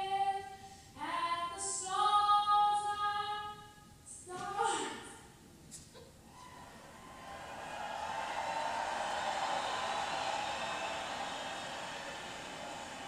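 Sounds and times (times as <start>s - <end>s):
arena crowd noise over loudspeakers: 6.3s - 13.0s.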